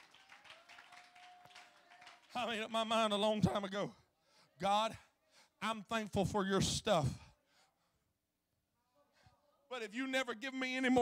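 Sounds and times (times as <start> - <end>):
faint claps: 0.0 - 2.4.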